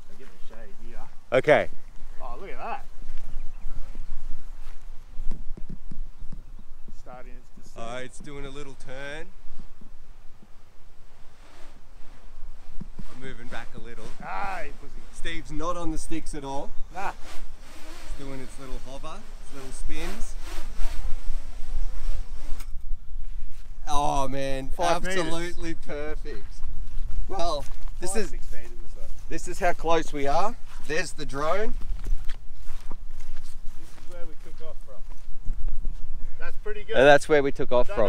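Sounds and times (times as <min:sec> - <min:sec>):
wind rumbling on microphone: 0:00.0 - 0:38.0
drone propellers buzzing: 0:01.2 - 0:23.8.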